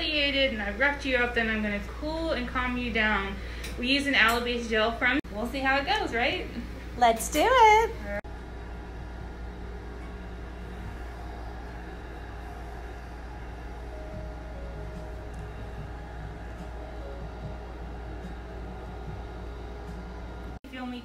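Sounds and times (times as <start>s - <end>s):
low machine hum: 0.0s - 21.0s
faint steady tones: 8.0s - 21.0s.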